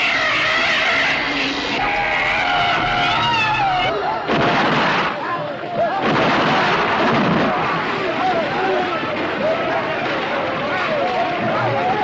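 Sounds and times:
high shrieking cries: 0.0 - 4.0
dense loud din: 0.0 - 12.0
sudden noisy blast: 1.0 - 10.6.

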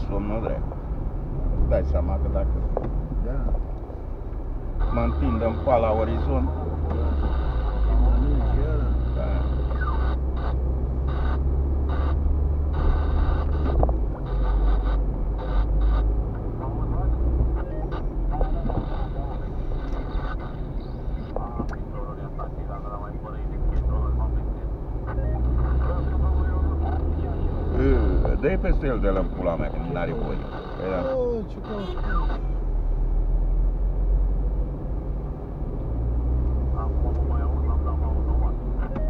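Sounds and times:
engine and road rumble: 0.0 - 39.0
muffled talk in car: 0.0 - 39.0.

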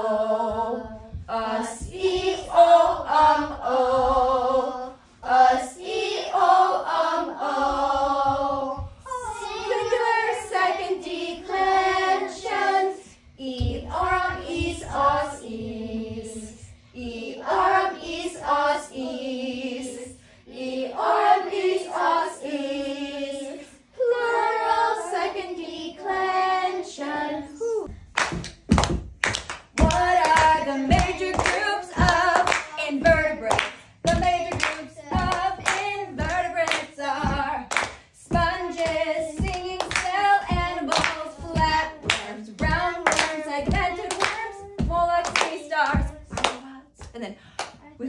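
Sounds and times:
woman and girl singing: 0.0 - 28.0, 29.8 - 47.2
rhythmic hand claps: 28.1 - 47.8.

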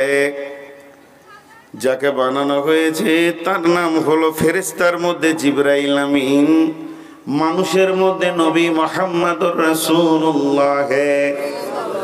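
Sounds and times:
man chanting through microphone: 0.0 - 0.8, 1.8 - 11.8.

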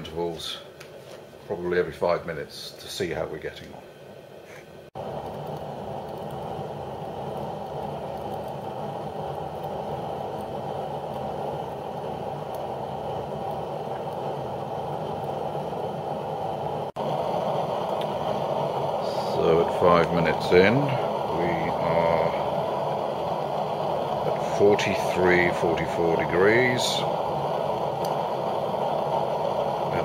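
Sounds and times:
fan-forced flame burning: 0.0 - 30.0
stove fan rushing: 0.0 - 30.0.

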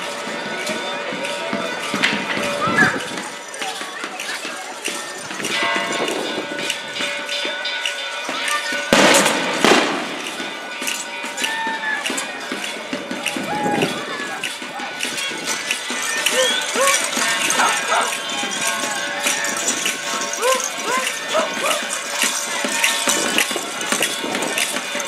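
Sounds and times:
voices: 0.0 - 25.0
procession music: 10.1 - 25.0.

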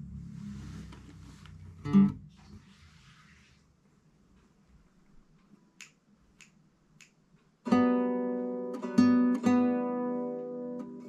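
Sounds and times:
plucked guitar note: 1.6 - 2.4
soft clicks: 4.3 - 7.6.

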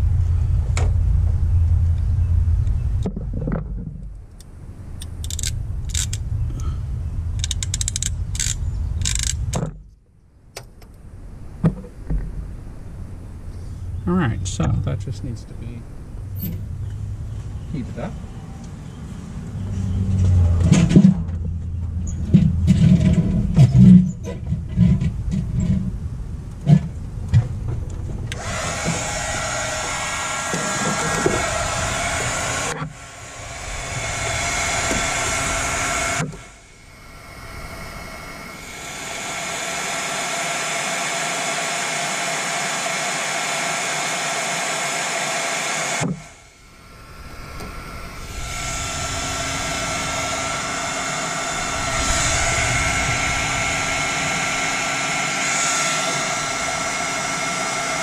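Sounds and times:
heat gun fan whine: 4.3 - 9.7, 28.3 - 58.0.

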